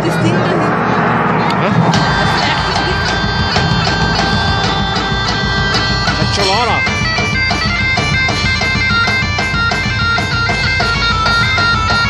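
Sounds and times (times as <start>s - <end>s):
crowd chatter: 0.0s - 12.0s
steady drum beat: 1.5s - 12.0s
bagpipes playing: 1.9s - 12.0s.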